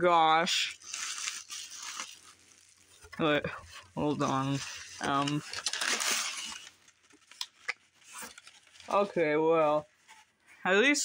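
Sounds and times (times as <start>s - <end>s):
packing paper crackling: 0.5s - 9.2s.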